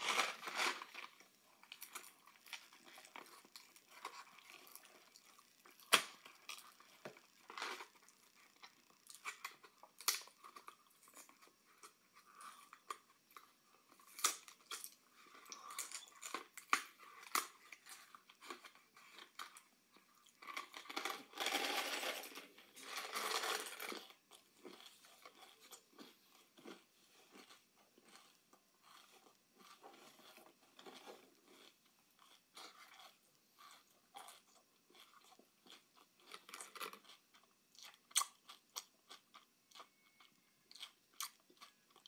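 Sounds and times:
crunching and chewing candy: 0.0 - 42.0
candies rattling from box: 20.8 - 24.1.

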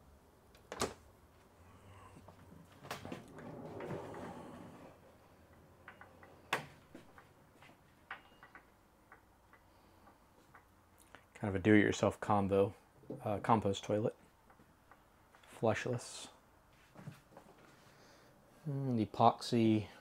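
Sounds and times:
sliding door rolling rumble: 2.9 - 5.4.

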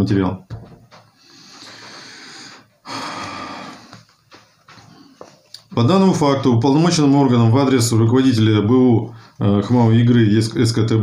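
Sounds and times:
man breathing: 1.0 - 5.4.

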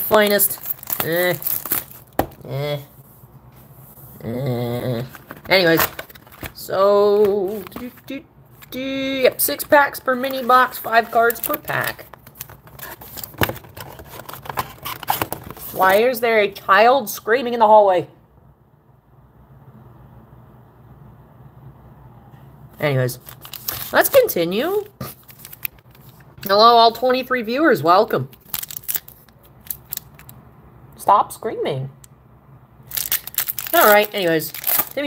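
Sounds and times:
cardboard box and foil packs handled: 0.0 - 2.4, 5.1 - 16.0, 23.2 - 26.3, 28.3 - 30.3, 32.9 - 35.0.

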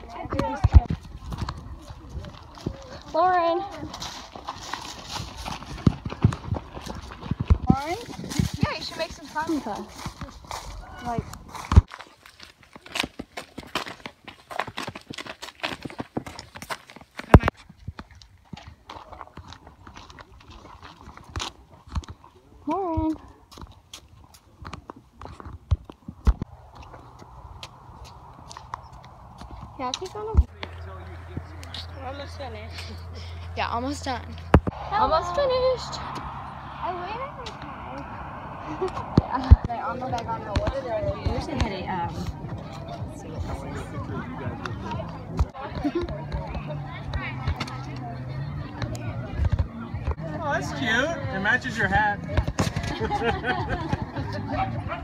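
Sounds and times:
people talking: 0.0 - 4.0, 7.6 - 11.4, 22.7 - 23.2, 29.8 - 55.0
footsteps on gravel: 0.0 - 49.9.

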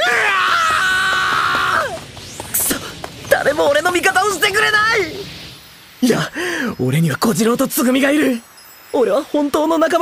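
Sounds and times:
man screaming: 0.0 - 2.0.

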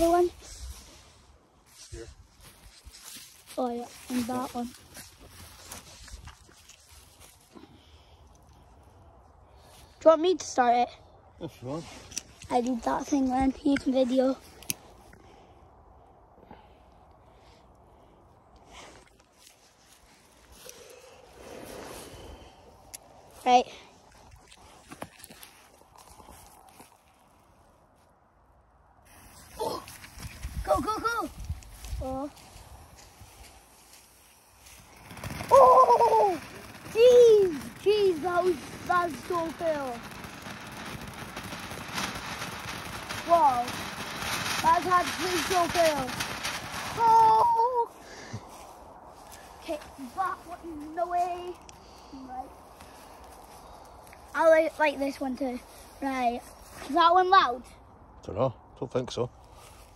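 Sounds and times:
firework hissing: 20.6 - 22.8, 34.3 - 48.2.

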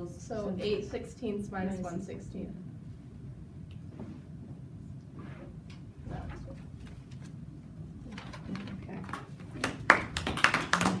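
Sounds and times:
small group clapping: 8.2 - 11.0.

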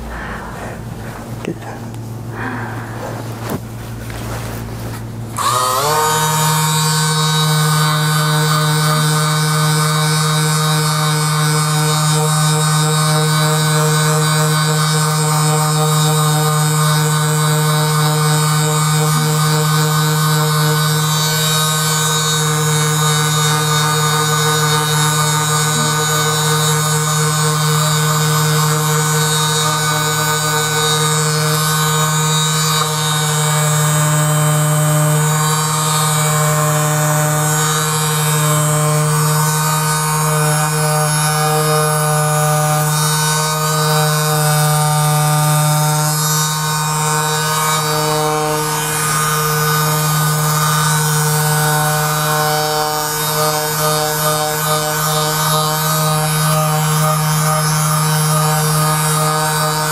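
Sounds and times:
massage gun motor humming: 0.0 - 59.9.

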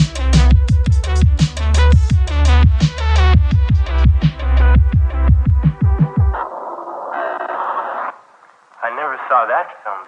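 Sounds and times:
tinny radio hiss: 6.4 - 10.0.

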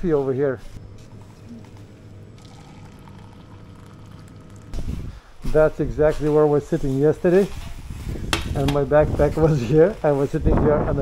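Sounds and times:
low mechanical hum: 0.0 - 6.2.

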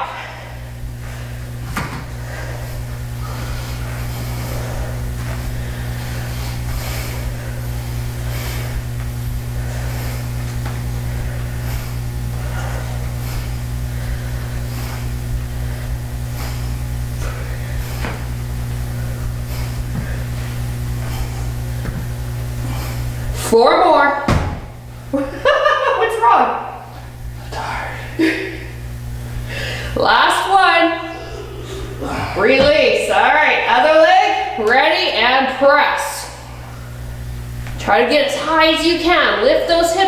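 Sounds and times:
room machinery hum: 0.0 - 40.0.

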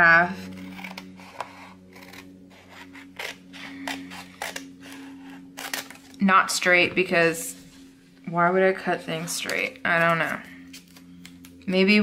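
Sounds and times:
scissors snipping paper: 0.4 - 6.2.

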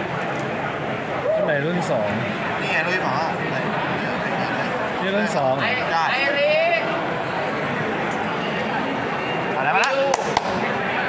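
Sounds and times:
background chatter in a hall: 0.0 - 11.0.

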